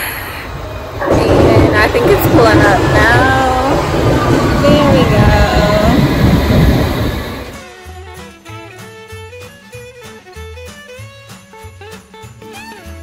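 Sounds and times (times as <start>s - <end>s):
underground train rumbling and squealing: 0.0s - 7.7s
christmas swing tune with sleigh bells: 7.9s - 13.0s.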